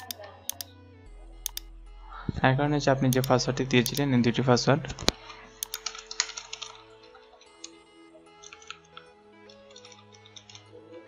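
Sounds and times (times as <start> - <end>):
computer keyboard typing: 0.0 - 0.7, 1.4 - 1.7, 3.2 - 4.0, 5.6 - 10.7.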